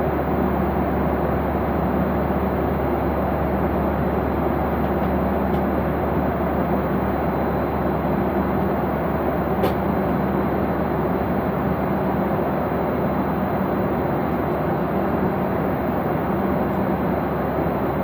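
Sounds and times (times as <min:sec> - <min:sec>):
airliner cabin engine rush: 0:00.0 - 0:18.0.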